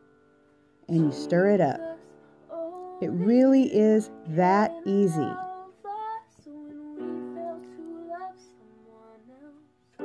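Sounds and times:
woman singing held notes: 0.9 - 9.4.

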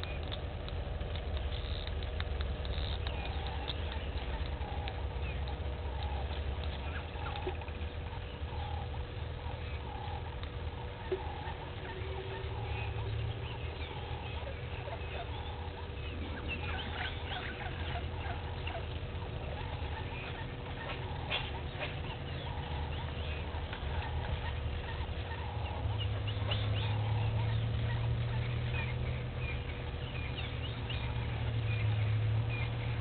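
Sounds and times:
low steady rumble: 0.0 - 33.0
small animals chirping: 0.0 - 33.0.

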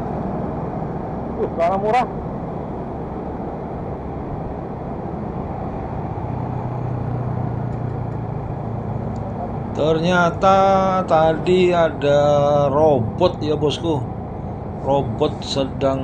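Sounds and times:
traffic noise: 0.0 - 16.0
wind: 0.0 - 16.0.

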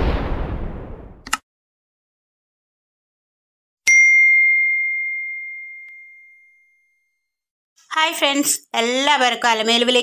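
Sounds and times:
notification bell ding: 3.9 - 7.2.

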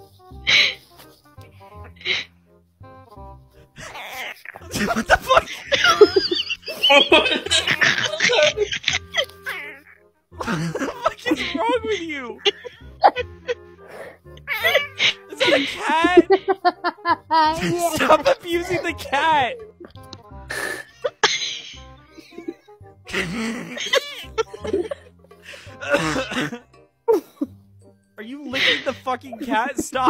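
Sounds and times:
background music: 0.0 - 30.0
person clearing throat: 23.1 - 24.0, 25.8 - 26.6.

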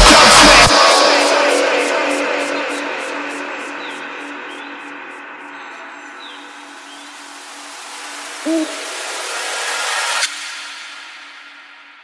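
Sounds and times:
hiss-like wash: 6.6 - 12.0
vocal sample sliding in pitch: 8.4 - 9.2.

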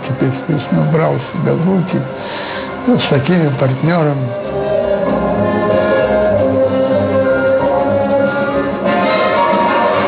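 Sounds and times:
orchestral brass chords: 0.0 - 10.0.

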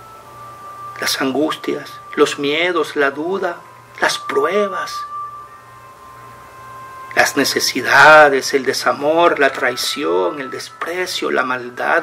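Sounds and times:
soft music of ringing tones: 0.0 - 12.0.

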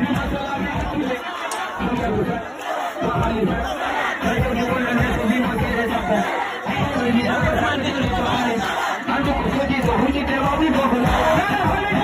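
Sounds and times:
amplified music: 0.0 - 12.0
crowd shouting and chattering: 0.0 - 12.0.

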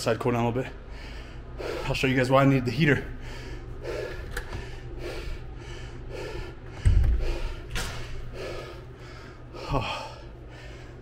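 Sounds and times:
man panting: 0.8 - 2.1, 3.0 - 11.0.

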